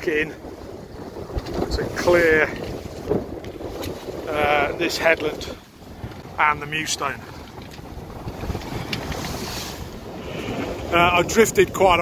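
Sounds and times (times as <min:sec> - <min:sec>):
water rushing along hull: 0:00.0 - 0:12.0
wind buffeting microphone: 0:00.0 - 0:12.0.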